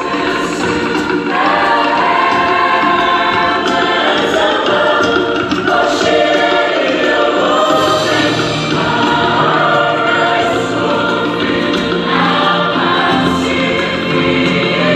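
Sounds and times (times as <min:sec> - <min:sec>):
women's choir singing: 0:00.0 - 0:14.9.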